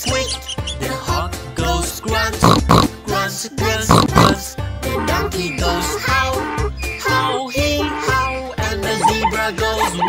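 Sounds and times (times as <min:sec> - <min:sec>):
upbeat children's song: 0:00.0 - 0:10.0
cartoon pig grunts: 0:02.4 - 0:02.9, 0:03.9 - 0:04.4.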